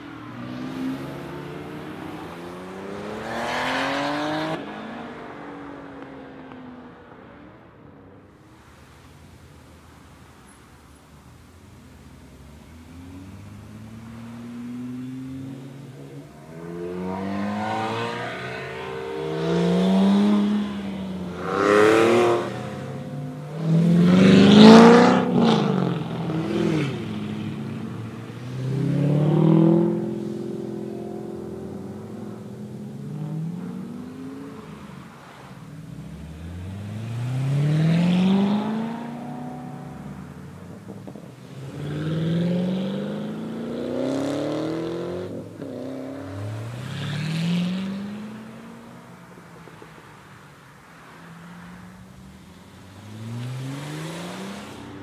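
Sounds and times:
sports cars accelerating past: 0:00.0 - 0:09.5, 0:11.4 - 0:55.0.

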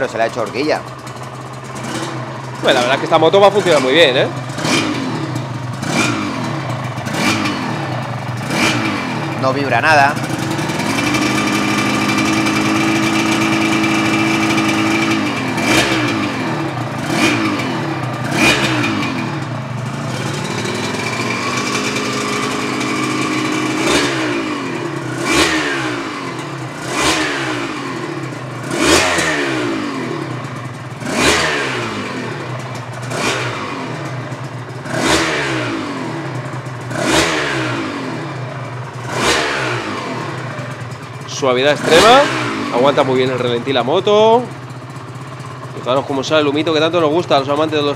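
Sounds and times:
two-stroke motorcycle engine revving: 0:00.0 - 0:47.9.

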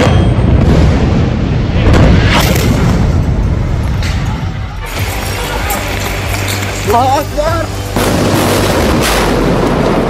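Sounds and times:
explosions booming: 0:00.0 - 0:05.1, 0:07.9 - 0:10.0.

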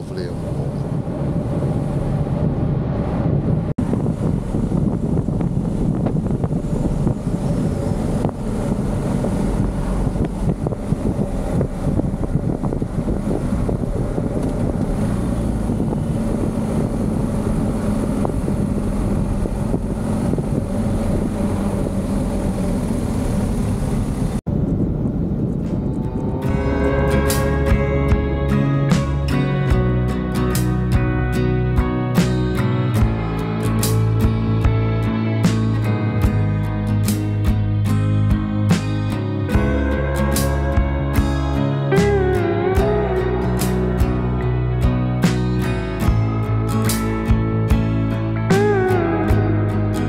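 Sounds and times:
wind rushing over microphone: 0:00.0 - 0:50.0
motorcycle engine running: 0:03.8 - 0:31.1
guitar music: 0:04.3 - 0:20.4, 0:25.6 - 0:50.0.

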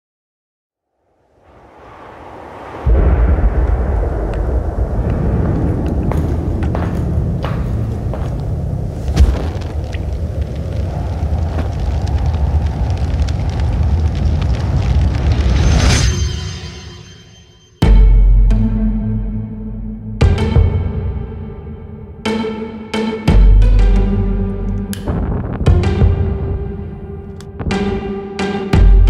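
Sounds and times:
fire roaring with crackles: 0:01.2 - 0:16.4.

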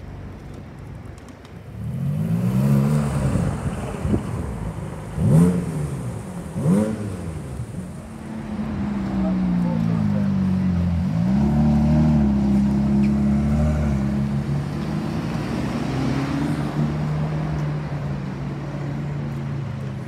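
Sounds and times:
sports car engines pulling away: 0:01.7 - 0:20.0.

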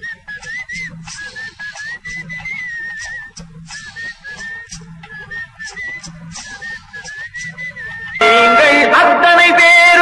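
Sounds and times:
light percussion beat: 0:00.0 - 0:09.6
flute melody: 0:00.0 - 0:10.0.

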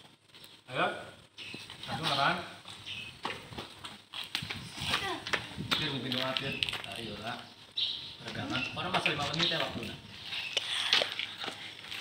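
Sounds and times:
young people talking and calling out: 0:04.6 - 0:06.8.

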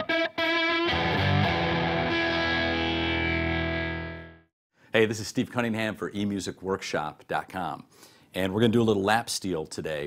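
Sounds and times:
lap steel guitar chord: 0:00.0 - 0:04.4.

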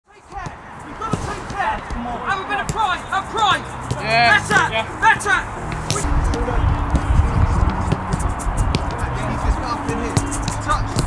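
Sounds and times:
players calling and shouting: 0:00.1 - 0:11.0
footballs being kicked: 0:03.8 - 0:04.8, 0:05.6 - 0:11.0.

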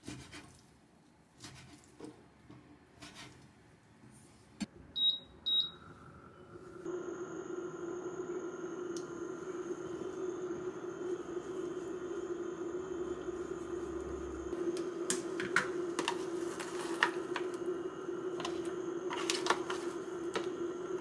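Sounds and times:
electrical hum: 0:04.6 - 0:21.0
faint high whine: 0:04.9 - 0:21.0
cooktop beeping: 0:05.0 - 0:06.0, 0:06.9 - 0:21.0.

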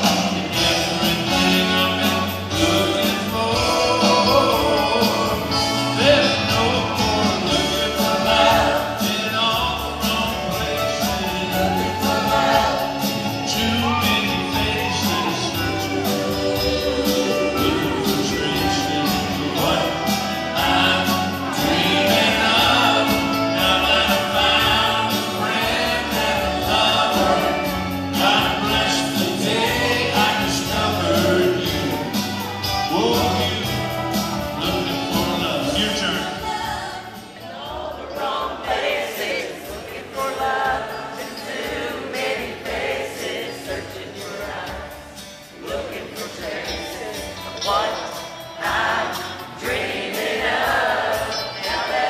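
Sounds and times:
country band playing: 0:00.0 - 0:52.0
male lead vocal: 0:00.0 - 0:52.0
voices singing together: 0:00.0 - 0:52.0.

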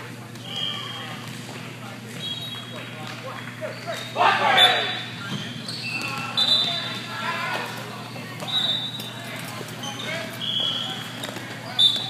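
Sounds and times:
voices echoing in a hall: 0:00.0 - 0:12.0
sneakers squeaking on court: 0:04.9 - 0:07.1, 0:08.0 - 0:12.0.

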